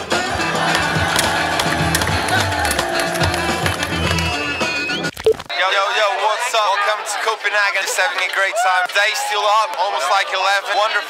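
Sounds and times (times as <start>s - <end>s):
background music: 0.0s - 5.8s
skateboard clacks: 0.6s - 4.3s.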